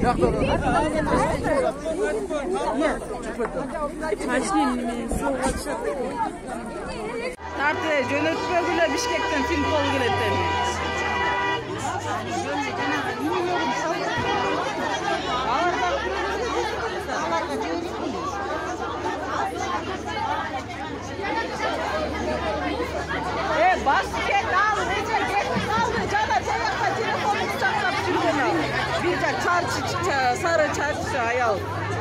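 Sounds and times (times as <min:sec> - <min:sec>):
crowd talking and shouting: 0:00.0 - 0:32.0.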